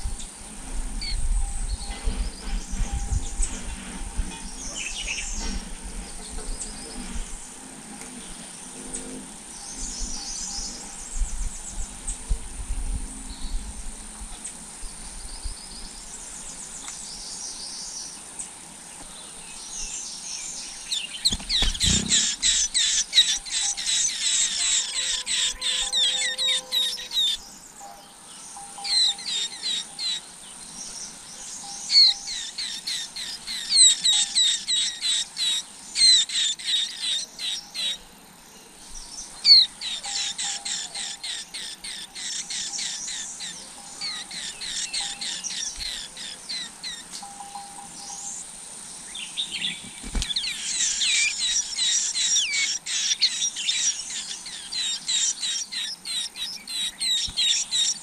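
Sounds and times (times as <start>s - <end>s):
nestlings chirping: 20.5s - 38.0s, 38.9s - 48.4s, 49.2s - 58.0s.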